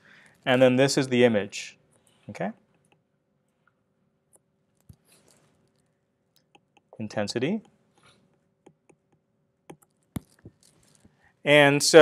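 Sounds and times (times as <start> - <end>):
stylus tapping on glass screen: 6.4 - 7.0, 8.4 - 10.8.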